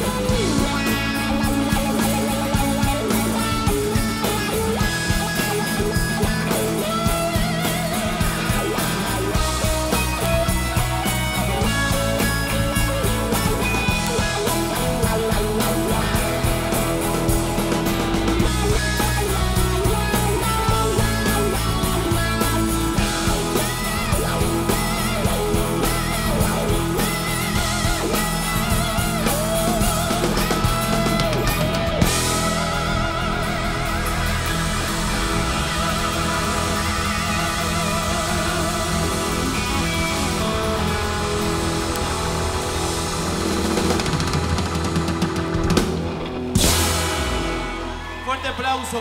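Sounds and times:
electric guitar lead with bends: 0.0 - 48.5
bass guitar: 0.0 - 49.0
drum kit: 0.0 - 49.0.

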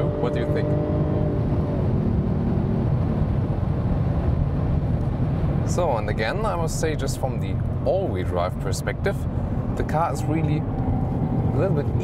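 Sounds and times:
car engine under throttle: 0.0 - 7.8, 8.5 - 12.0
road noise: 0.0 - 12.0.

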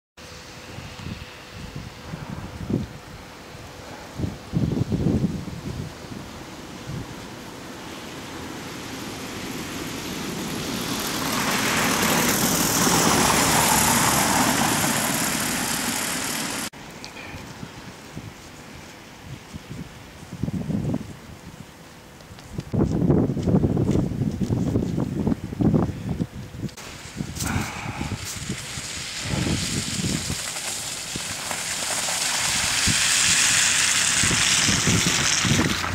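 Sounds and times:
wind rumble on microphone: 0.5 - 16.7, 17.4 - 35.9
car tyres hissing on wet road: 0.6 - 16.7, 26.8 - 35.9.

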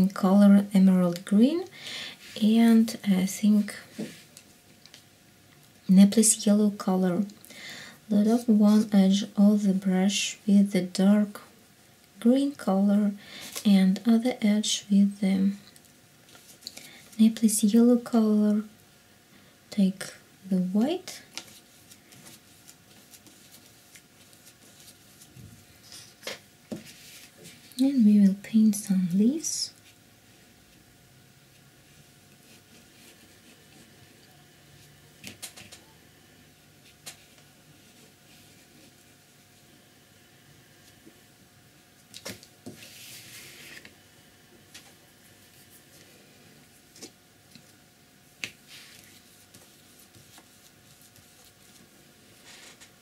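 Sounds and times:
paintbrush swishing through paint: 42.8 - 43.8.

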